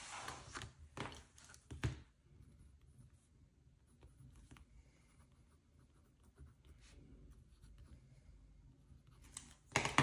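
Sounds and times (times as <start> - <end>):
pen scratching on paper: 2.4 - 8.2.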